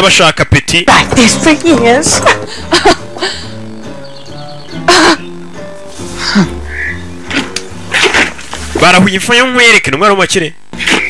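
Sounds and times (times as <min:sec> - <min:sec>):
soft film score: 0:00.4 - 0:11.0.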